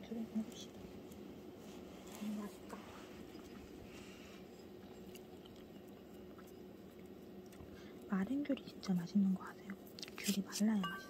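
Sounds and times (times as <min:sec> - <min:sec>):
low room hum: 0:00.0 - 0:11.0
person chewing: 0:04.4 - 0:07.7.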